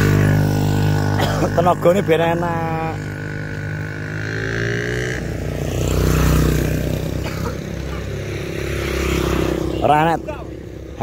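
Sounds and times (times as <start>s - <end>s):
motorcycle engines passing: 0.0s - 11.0s.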